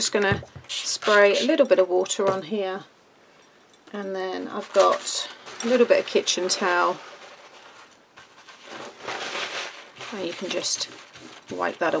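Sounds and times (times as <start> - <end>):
paper towel rubbing plastic sheet: 4.6 - 12.0.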